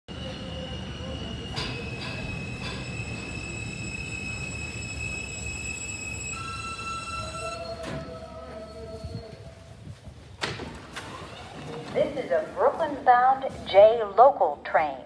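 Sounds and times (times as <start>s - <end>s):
train wheels rumbling on track: 0.1s - 6.6s.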